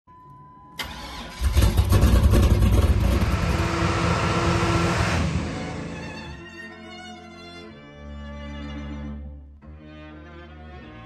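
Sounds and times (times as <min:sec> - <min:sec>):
car engine starting and running: 0:00.8 - 0:06.4.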